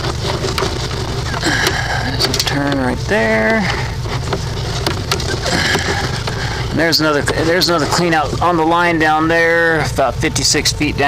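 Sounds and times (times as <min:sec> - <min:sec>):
motor running low rumble: 0:00.0 - 0:11.0.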